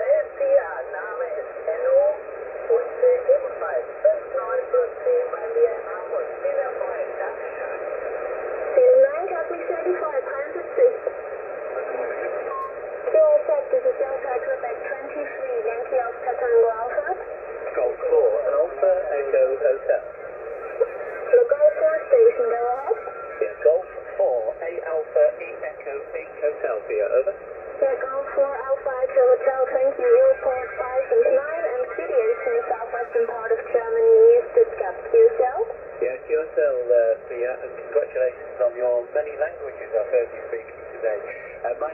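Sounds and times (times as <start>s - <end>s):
overlapping garbled radio voices: 0.0s - 41.9s.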